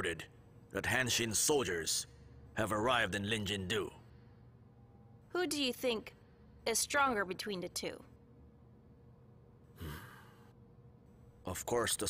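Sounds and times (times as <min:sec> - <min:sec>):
man's breathy hmm: 0:09.7 - 0:10.5.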